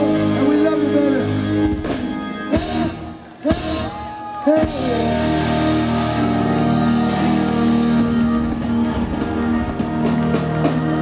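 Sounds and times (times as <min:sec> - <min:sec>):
electric guitars holding chord: 0:00.0 - 0:04.0, 0:04.6 - 0:11.0
drum hits: 0:07.1 - 0:11.0.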